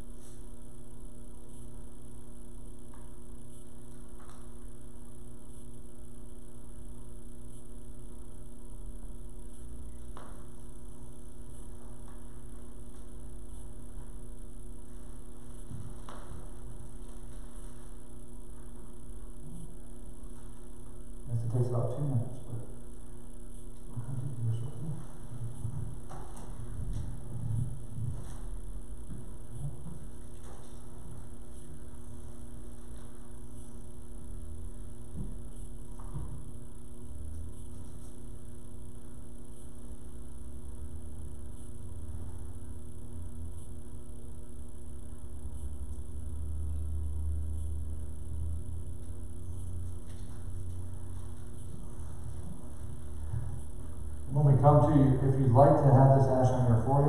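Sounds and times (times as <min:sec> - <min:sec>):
constant hiss: 0:00.0 - 0:57.0
electrical hum: 0:00.0 - 0:57.0
faint low rumble: 0:00.0 - 0:57.0
soft muffled low sounds: 0:00.0 - 0:57.0.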